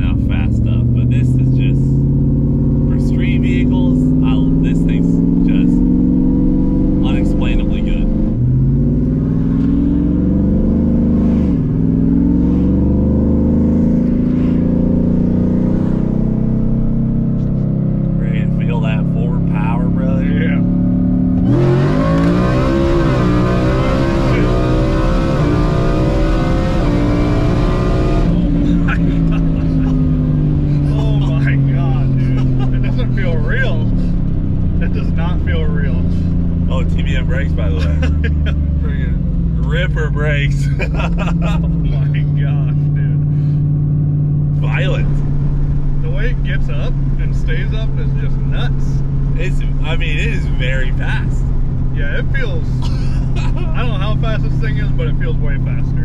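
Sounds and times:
engine full-throttle pull with upshifts: 0.0 - 56.0
supercharged truck engine: 0.0 - 56.0.

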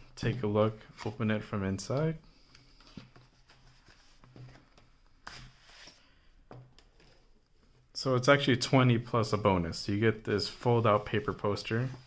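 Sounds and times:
paper rustling: 2.8 - 6.0.

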